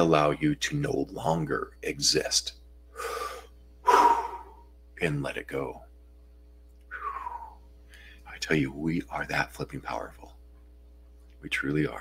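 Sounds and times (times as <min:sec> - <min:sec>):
man breathing in: 0:02.9 - 0:04.6, 0:06.9 - 0:08.2
man breathing out: 0:02.9 - 0:04.6, 0:06.9 - 0:08.2.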